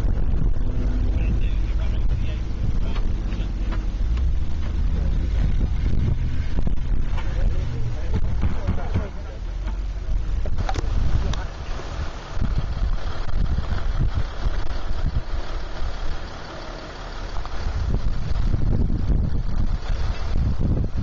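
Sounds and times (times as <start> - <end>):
wind buffeting microphone: 0.0 - 16.4, 17.0 - 21.0
vehicle engine running: 0.0 - 21.0.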